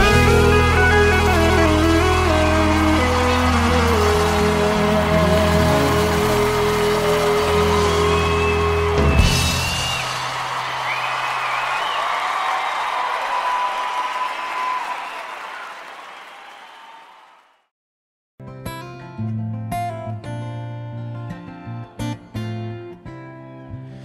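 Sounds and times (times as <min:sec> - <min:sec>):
live band final chord: 0:00.0 - 0:10.0
audience applause and cheering: 0:00.0 - 0:17.7.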